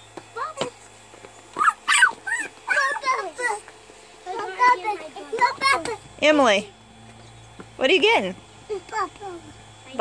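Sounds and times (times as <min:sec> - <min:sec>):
children squealing and chattering: 0:01.5 - 0:06.2.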